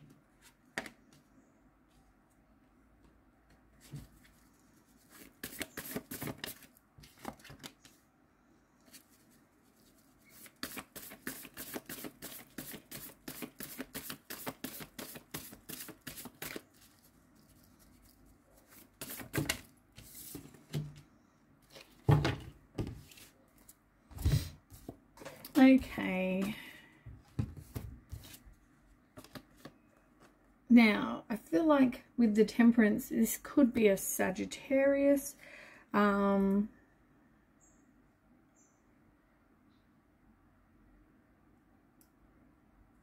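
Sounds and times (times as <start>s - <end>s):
cards shuffling: 3.9s - 8.0s, 8.9s - 20.8s, 29.2s - 30.3s.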